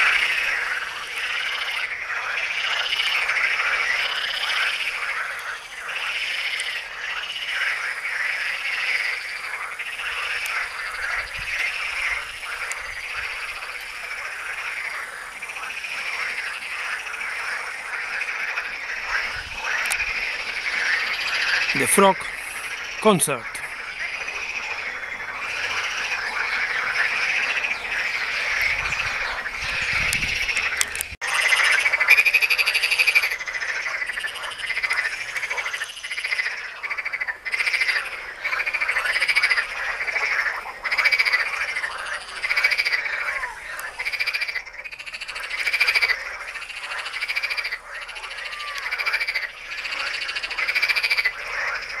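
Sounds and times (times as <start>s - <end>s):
frogs croaking in chorus: 0.0s - 52.0s.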